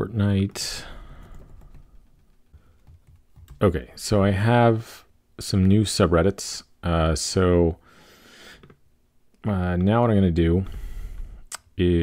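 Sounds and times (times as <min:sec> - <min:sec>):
typing on computer keyboard: 0:01.2 - 0:03.6.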